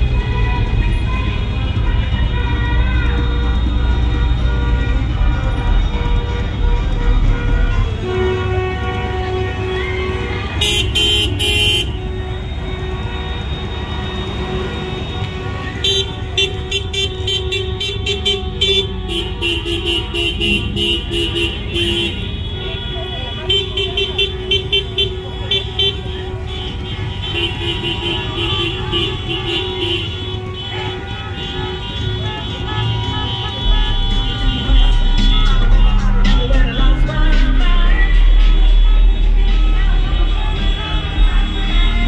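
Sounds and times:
car engines running: 0:00.0 - 0:42.0
car horns honking: 0:00.0 - 0:42.0.

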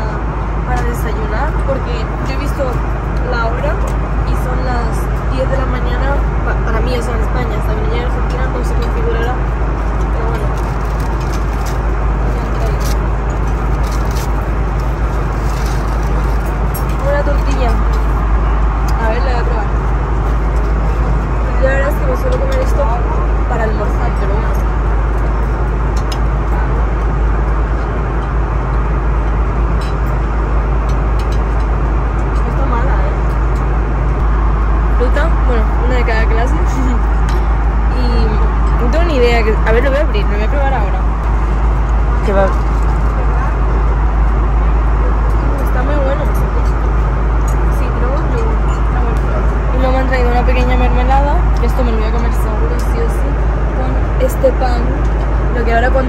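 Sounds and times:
airliner cabin drone: 0:00.0 - 0:56.0
aluminium foil crinkling: 0:10.3 - 0:17.1.

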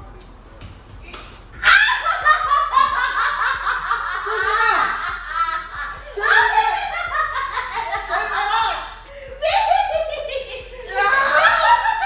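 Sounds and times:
people laughing hard: 0:01.6 - 0:12.0.

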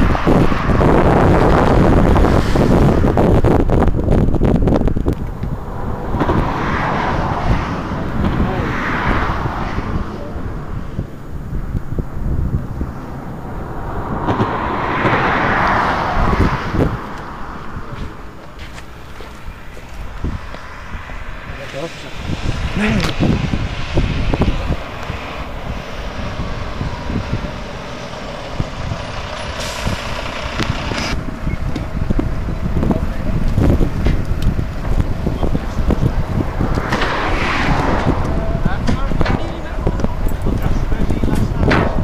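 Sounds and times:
vehicles passing: 0:00.0 - 0:42.0
wind buffeting microphone: 0:00.0 - 0:42.0.

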